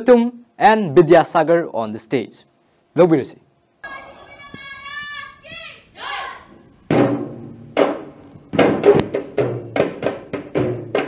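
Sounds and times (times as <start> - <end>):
boy calling out: 3.8 - 6.5
barrel drum strikes: 6.9 - 11.0.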